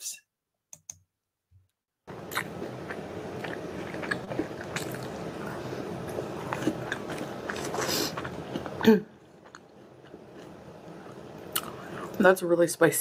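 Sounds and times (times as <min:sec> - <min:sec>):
person chewing food: 0:02.1 - 0:12.2.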